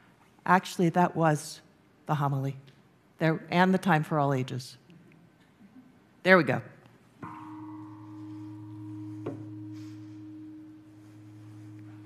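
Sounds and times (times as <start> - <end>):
singing bowl ringing: 7.2 - 12.0.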